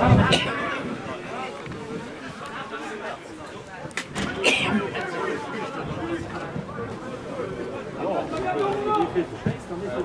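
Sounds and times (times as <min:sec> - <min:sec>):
open-air ambience: 0:00.0 - 0:10.0
voices chattering and calling out: 0:00.0 - 0:10.0.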